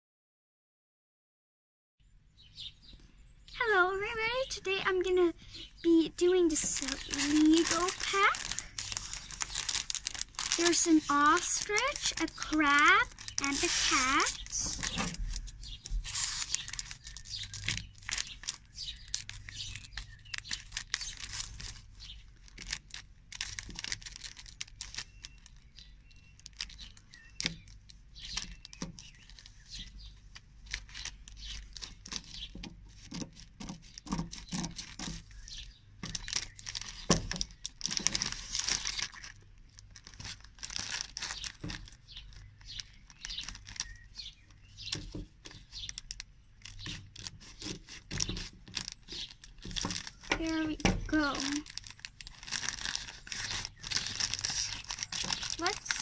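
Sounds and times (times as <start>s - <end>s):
plastic bag crinkling: 3.6s - 56.0s
scissors cutting plastic bag: 5.8s - 56.0s.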